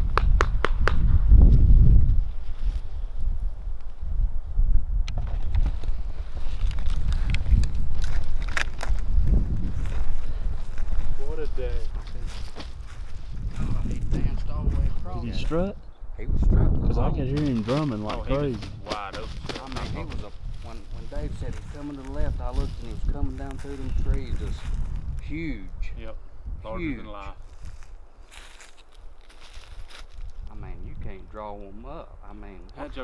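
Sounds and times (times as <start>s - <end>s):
wind rumble on microphone: 0.0s - 33.0s
footsteps through dry grass: 5.6s - 15.6s, 17.2s - 25.3s, 27.4s - 30.7s.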